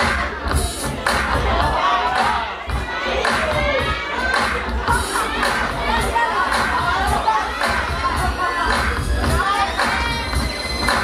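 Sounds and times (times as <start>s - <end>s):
audience cheering and shouting: 0.0s - 11.0s.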